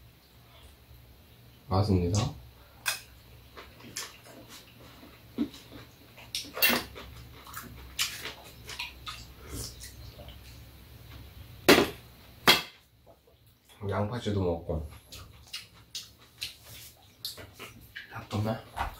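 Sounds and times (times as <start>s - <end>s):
chewing: 3.5s - 10.6s, 14.9s - 18.4s.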